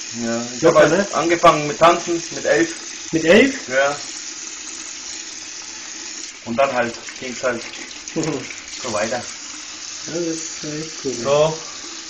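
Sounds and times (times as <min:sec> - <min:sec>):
tap water running into sink: 0:00.0 - 0:12.0.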